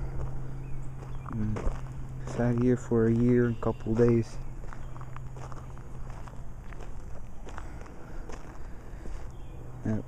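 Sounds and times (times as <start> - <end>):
footsteps on gravel: 0.0 - 10.0.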